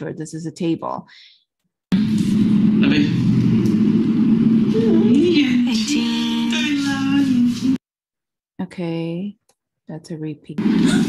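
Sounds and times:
wavering pitched tone: 4.7s - 5.8s.

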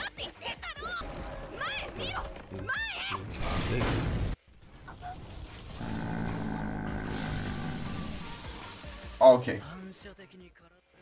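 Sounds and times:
long roar-like sound: 5.7s - 8.5s
dramatic music: 5.8s - 8.9s.

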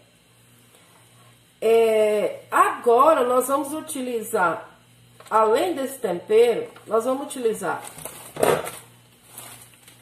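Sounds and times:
plastic packet rustling: 7.8s - 10.0s.

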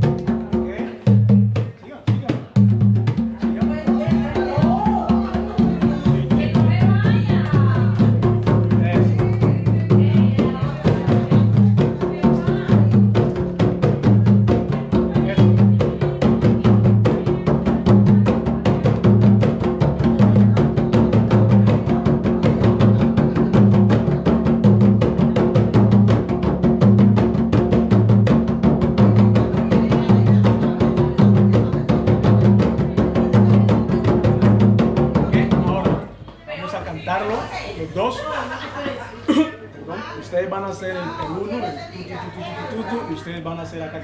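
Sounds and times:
deep open drum tones: 0.0s - 36.2s
hand drums playing: 0.0s - 36.2s.

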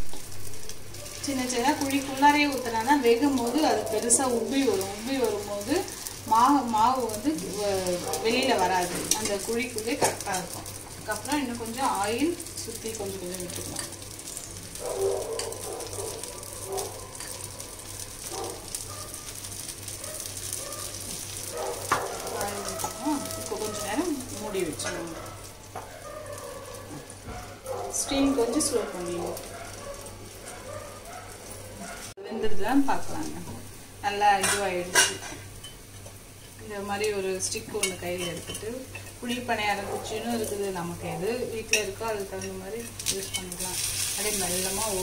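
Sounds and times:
batter sizzling in hot oil: 0.0s - 45.0s
metal skewer scraping a pan: 41.7s - 45.0s.

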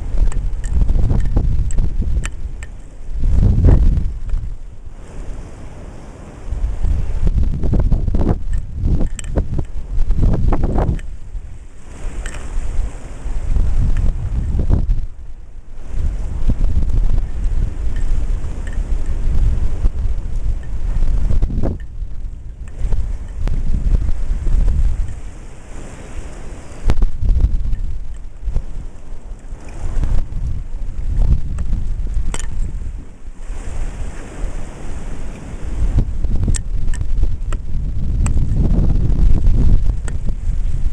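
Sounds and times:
ocean surf: 0.0s - 40.9s
wind buffeting microphone: 0.0s - 40.9s.

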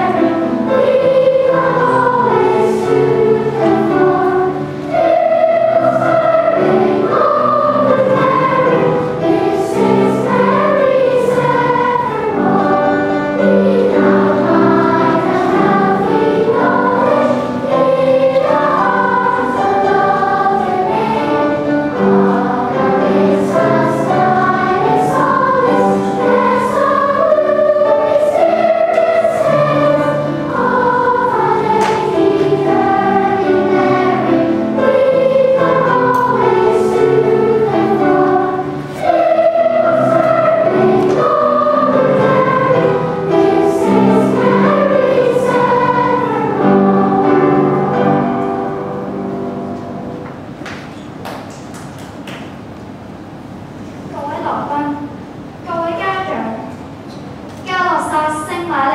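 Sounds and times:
girls choir singing: 0.0s - 50.6s.

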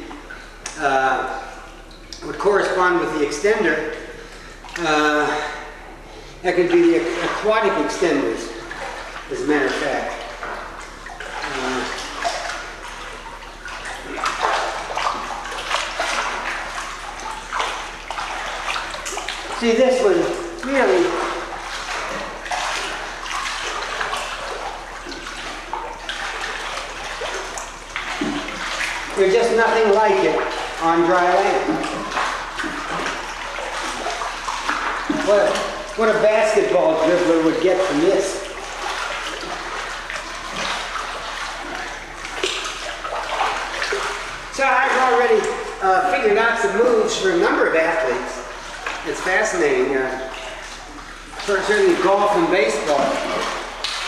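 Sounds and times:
pool water splashing: 0.0s - 54.0s
man's voice: 6.4s - 8.5s, 29.2s - 31.9s, 35.2s - 38.4s, 44.6s - 48.5s, 51.4s - 53.4s.

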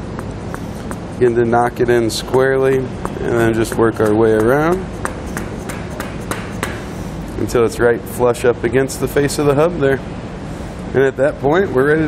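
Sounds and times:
mallet tapping metal cap: 3.1s - 6.8s.

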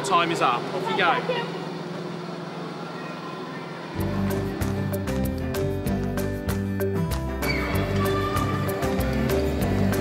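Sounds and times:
indoor amusement arcade din: 0.1s - 5.0s, 7.4s - 10.0s.

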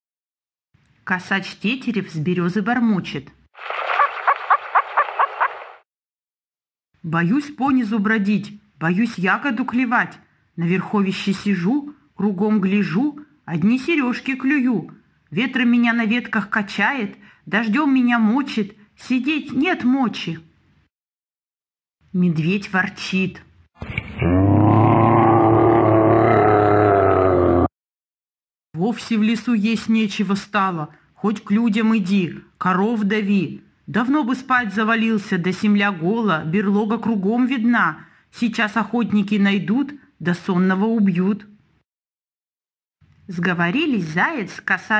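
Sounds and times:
grouse bubbling call: 4.0s - 5.6s
bear growling: 23.8s - 27.7s.

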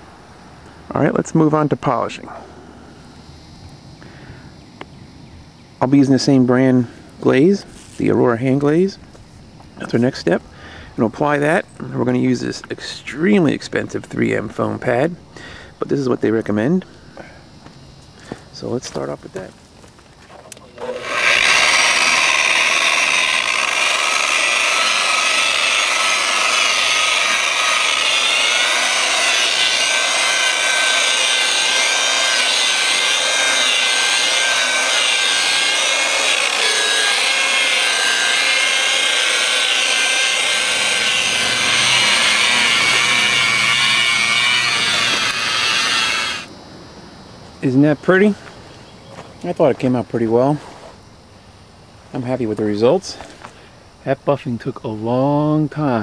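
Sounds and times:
electric polisher motor whine: 20.7s - 46.5s.

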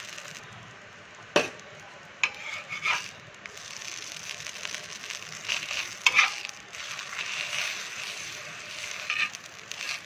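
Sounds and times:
batter sizzling on griddle: 0.0s - 10.0s
metal spatula scraping pan: 2.2s - 3.2s, 5.4s - 10.0s.

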